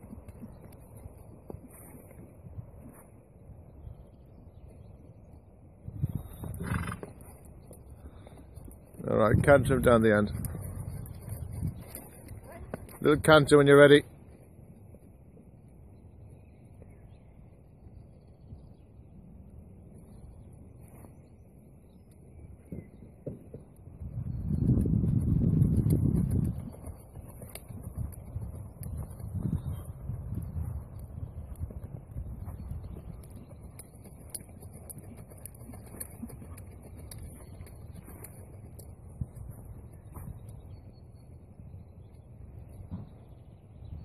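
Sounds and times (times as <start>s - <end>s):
horse hoofbeats cantering: 0.0s - 3.0s, 6.2s - 15.5s, 22.6s - 40.7s
birds singing: 15.1s - 25.6s, 26.2s - 44.0s.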